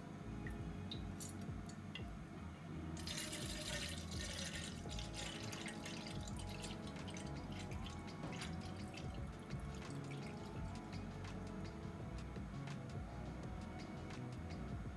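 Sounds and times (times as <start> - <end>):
water pouring into metal kettle: 3.0 - 11.0.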